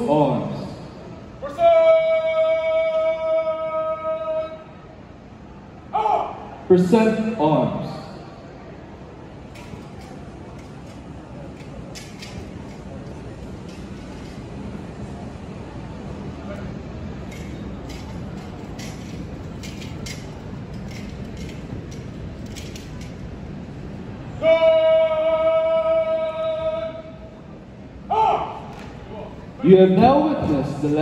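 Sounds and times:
murmur of onlookers: 0.0 - 31.0
loud steady pitched tone: 23.9 - 27.4.

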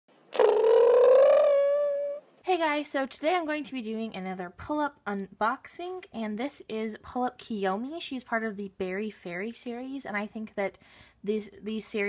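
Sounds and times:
high voice-like call: 0.3 - 2.2.

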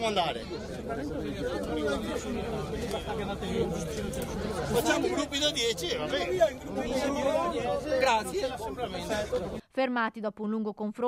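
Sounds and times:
men chattering in a crowd: 0.0 - 9.6.

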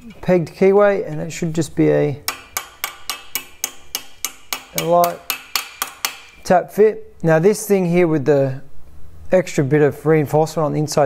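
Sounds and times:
hammer tapping on steel: 2.3 - 6.4.

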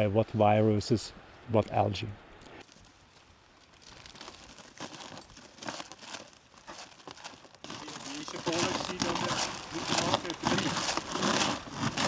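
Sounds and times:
plastic bags crinkling: 3.7 - 12.0.

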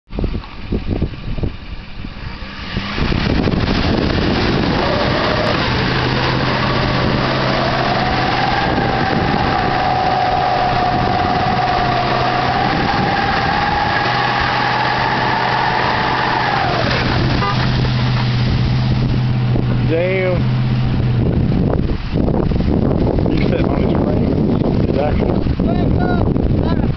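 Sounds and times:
truck engine revving: 2.1 - 24.0
wheels spinning in mud: 2.4 - 18.2.

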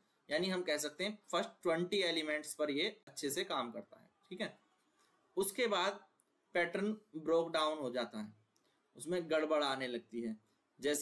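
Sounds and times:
man talking: 0.3 - 4.6, 5.4 - 8.4, 9.0 - 11.0.

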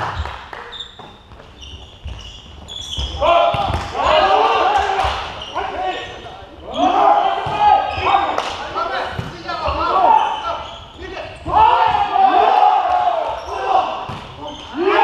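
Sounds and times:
players shouting calls: 3.0 - 15.0.

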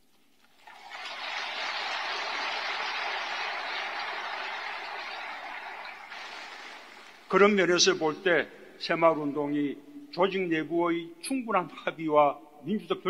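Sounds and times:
audience applauding: 0.6 - 7.4.

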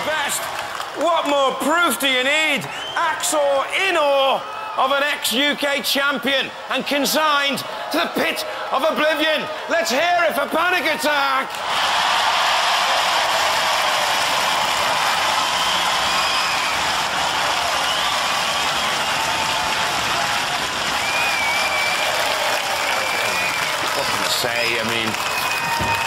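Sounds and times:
audience clapping and cheering: 0.0 - 26.0
voices rising above applause: 0.0 - 26.0.

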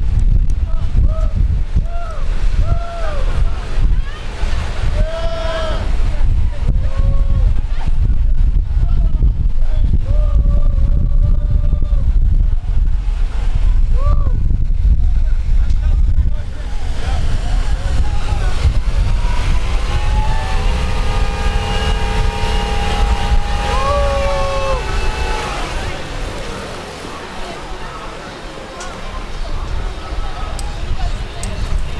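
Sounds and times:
wind buffeting microphone: 0.0 - 31.9
steady tones: 14.8 - 31.9
voices calling: 16.6 - 31.9.

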